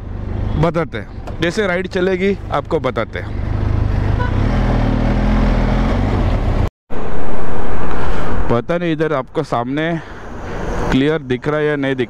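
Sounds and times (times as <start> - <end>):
vehicle engine drone: 0.0 - 12.0.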